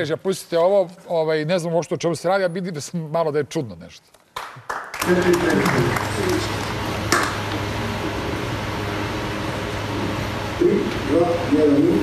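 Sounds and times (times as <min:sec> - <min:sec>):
low hum and hiss of room tone: 0:00.0 - 0:12.0.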